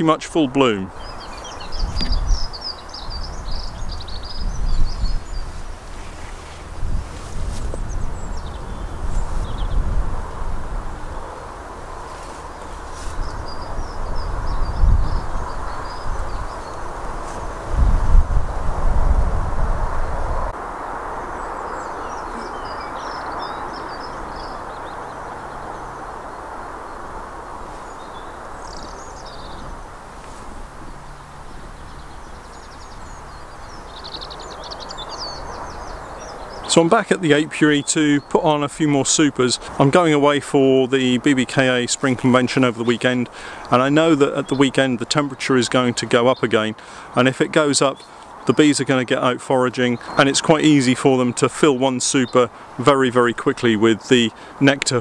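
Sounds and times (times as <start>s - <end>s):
birds calling: 0.0s - 55.0s
wind buffeting microphone: 0.9s - 45.2s.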